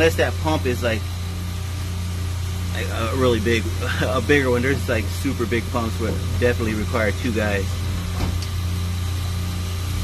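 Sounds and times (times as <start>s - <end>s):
refrigeration machinery drone: 0.0s - 10.0s.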